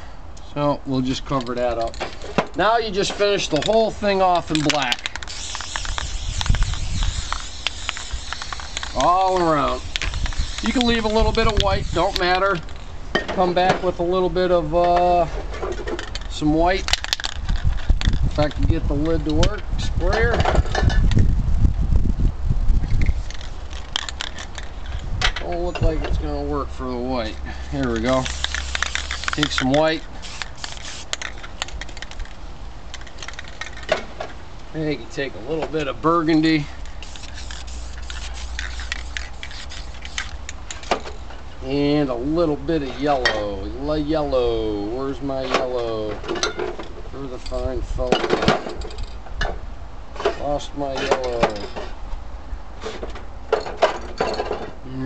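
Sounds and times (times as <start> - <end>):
spray nozzle sputtering: 3.9 - 12.4, 27.8 - 32.1, 36.9 - 40.9
spray paint can hissing: 3.9 - 12.4, 23.0 - 24.7, 27.8 - 32.2, 36.9 - 40.9.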